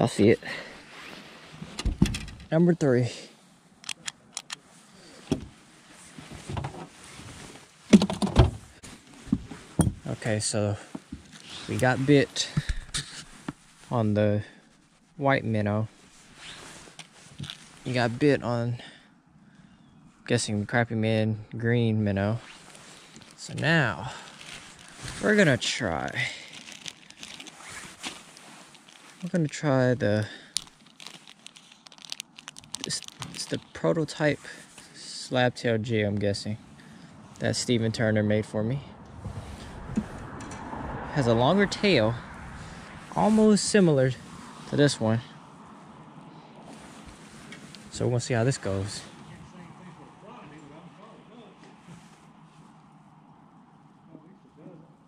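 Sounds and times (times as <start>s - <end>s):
handling knocks and thumps: 7.9s - 10.1s
plastic bag crinkling: 24.1s - 29.6s, 30.2s - 33.8s.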